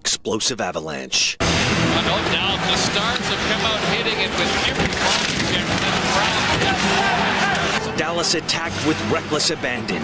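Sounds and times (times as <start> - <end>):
man talking: 0.0 - 7.0, 7.8 - 10.0
arena crowd roar: 1.5 - 8.4.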